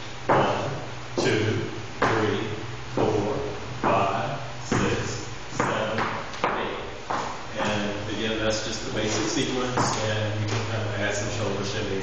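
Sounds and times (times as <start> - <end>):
man vocalizing rhythmic syllables: 0.3 - 8.2.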